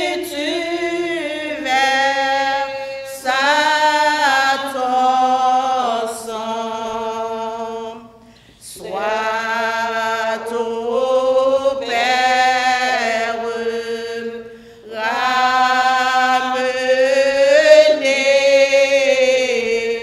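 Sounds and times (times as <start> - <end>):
woman singing a hymn unaccompanied: 0.0 - 20.0.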